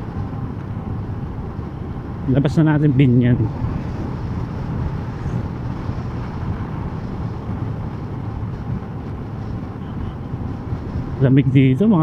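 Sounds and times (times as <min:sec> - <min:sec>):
motorcycle riding: 0:00.0 - 0:12.0
road noise: 0:00.0 - 0:12.0
wind rushing on microphone: 0:00.0 - 0:12.0.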